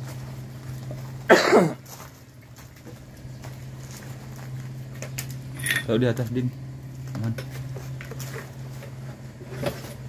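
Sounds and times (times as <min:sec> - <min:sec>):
steady low hum: 0:00.0 - 0:10.0
person coughing: 0:01.3 - 0:01.8.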